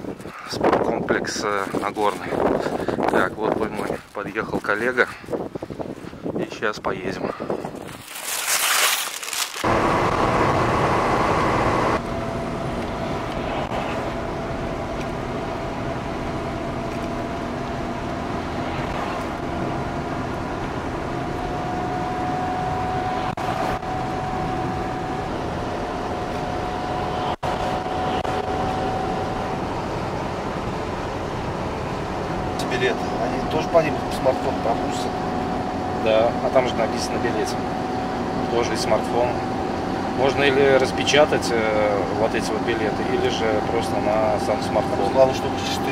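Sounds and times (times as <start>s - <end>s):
road and engine noise in car: 0.0s - 6.1s, 9.6s - 45.9s.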